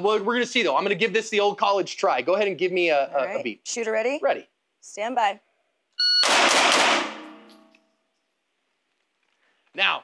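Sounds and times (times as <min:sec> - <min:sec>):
shot timer beep: 0:06.0 - 0:06.5
pistol shots ringing off walls: 0:06.2 - 0:07.7.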